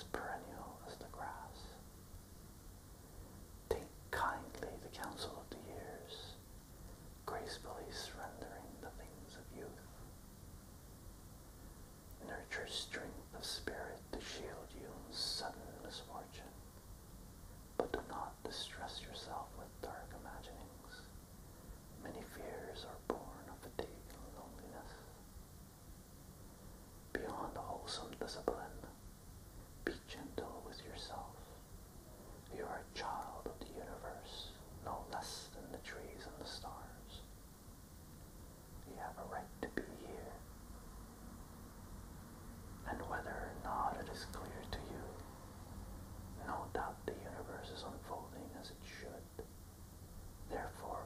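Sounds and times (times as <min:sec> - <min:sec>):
man whispering: 0:00.0 - 0:01.9, 0:03.6 - 0:10.0, 0:12.2 - 0:16.6, 0:17.8 - 0:21.2, 0:21.9 - 0:25.2, 0:27.1 - 0:29.1, 0:29.8 - 0:37.4, 0:38.8 - 0:40.5, 0:42.8 - 0:45.3, 0:46.4 - 0:49.5, 0:50.4 - 0:51.0.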